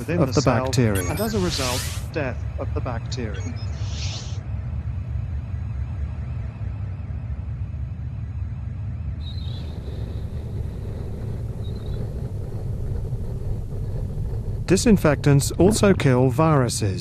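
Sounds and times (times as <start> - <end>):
low rumble: 4.4 - 17.0
faint high tone: 15.6 - 16.0.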